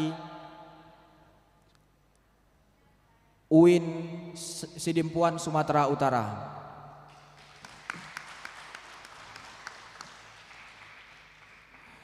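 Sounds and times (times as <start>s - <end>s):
faint audience applause: 7.1s - 12.0s.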